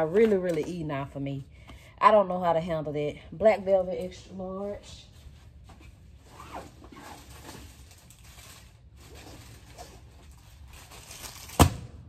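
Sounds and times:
rustling and scraping in storage bins: 4.7 - 11.6.

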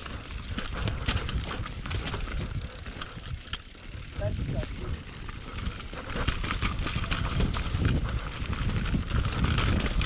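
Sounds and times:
bike rattling and knocking: 0.0 - 10.0
bike tyres rumbling on dirt: 0.0 - 10.0.

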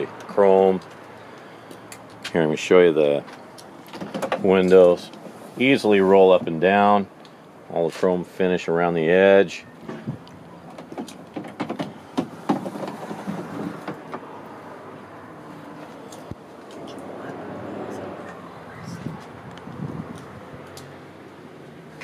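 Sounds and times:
small knocks: 10.7 - 14.3.

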